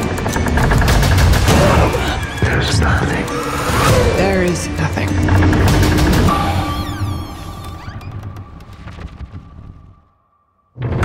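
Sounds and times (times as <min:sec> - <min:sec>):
rapid crackling clicks: 0:00.0 - 0:09.9
low rumble: 0:02.4 - 0:10.2
held high tone: 0:03.9 - 0:08.2.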